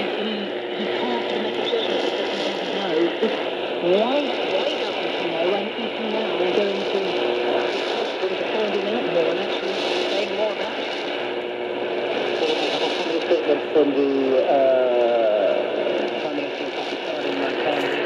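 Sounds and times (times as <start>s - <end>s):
man talking over radio: 0.0s - 18.0s
radio static hiss: 0.0s - 18.0s.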